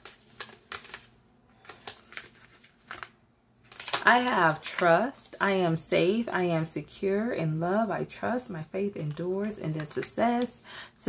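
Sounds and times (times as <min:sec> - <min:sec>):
cards being shuffled: 0:00.0 - 0:04.9.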